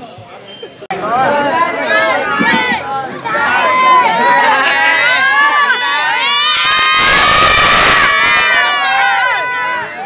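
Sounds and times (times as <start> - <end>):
crowd cheering and shouting: 0.9 - 10.0.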